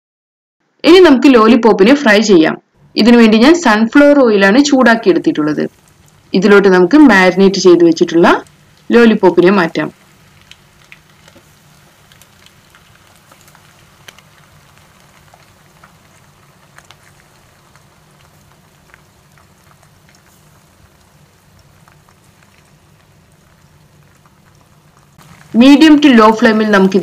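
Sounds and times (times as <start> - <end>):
food deep-frying in oil: 2.8 - 27.0
small crackles and pops: 4.8 - 27.0.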